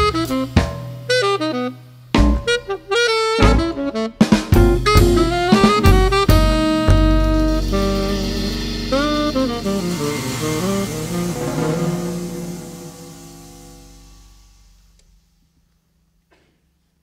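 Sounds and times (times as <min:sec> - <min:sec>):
saxophone: 0:00.0 - 0:13.3
upright bass: 0:03.4 - 0:03.8, 0:04.5 - 0:12.6
ringing cymbals: 0:07.5 - 0:15.3.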